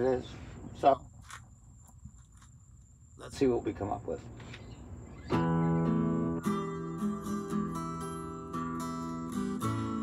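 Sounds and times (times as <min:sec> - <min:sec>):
night insects trilling: 0:00.0 - 0:10.0.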